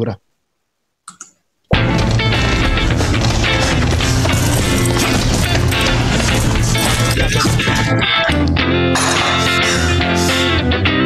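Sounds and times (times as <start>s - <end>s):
commercial song with sung vocal: 9.0s - 10.6s.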